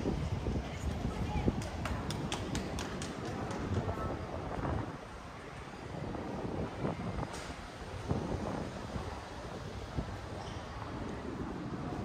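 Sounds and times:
faint street ambience: 0.0 - 12.0
wind buffeting microphone: 0.0 - 12.0.

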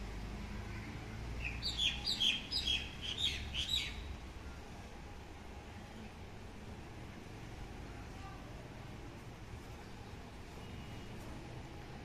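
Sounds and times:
bird chirping: 1.4 - 4.1.

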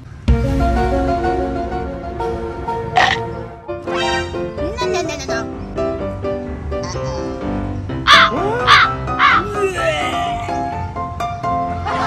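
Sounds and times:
background music: 0.0 - 12.0
crow cawing sound effect: 2.9 - 4.3, 8.1 - 9.4.

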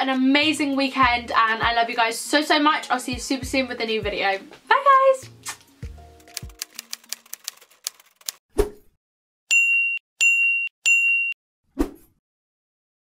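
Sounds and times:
typewriter key clicks: 6.2 - 8.4.

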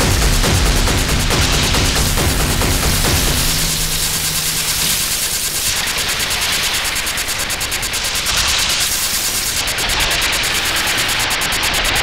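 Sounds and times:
low hum: 0.0 - 8.0
stuttering high-pitched pulse: 0.0 - 11.1
crackling distorted noise: 0.0 - 12.0.

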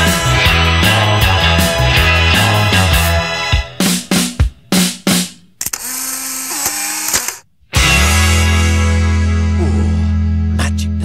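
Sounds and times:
rock band playing: 0.0 - 5.2, 7.7 - 10.4
rock band chord stabs: 7.8 - 9.6.

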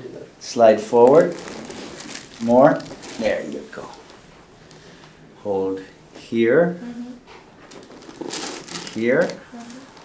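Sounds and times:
rustling of gown and clothing: 1.0 - 4.4, 7.6 - 10.0
person saying mm-hmm: 6.8 - 7.2.

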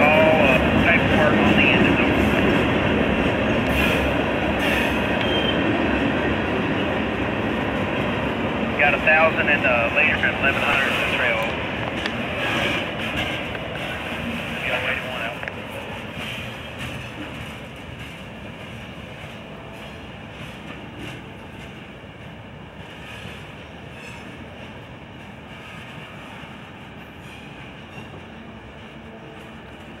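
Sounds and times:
train wheels rumbling on rails: 0.0 - 30.0
train wheels clicking: 8.9 - 19.5.

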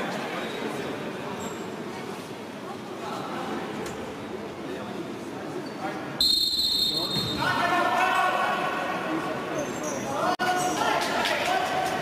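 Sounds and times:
referee's whistle blast: 6.2 - 7.5.

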